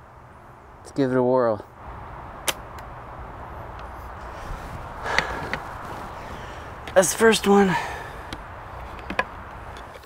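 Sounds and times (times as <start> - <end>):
outdoor background noise: 0.0 - 10.0.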